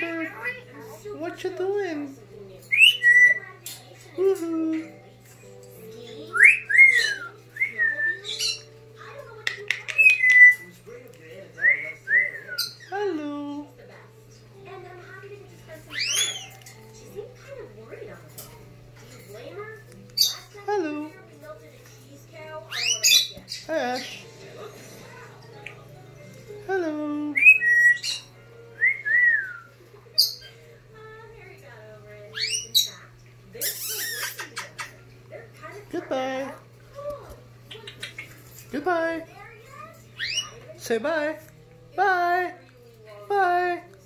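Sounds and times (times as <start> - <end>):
parrot whistling: 2.7 - 3.4, 6.3 - 8.7, 10.0 - 10.6, 11.6 - 12.9, 15.9 - 16.6, 22.7 - 23.3, 27.3 - 30.5, 32.3 - 32.9, 33.6 - 34.6, 40.2 - 40.6.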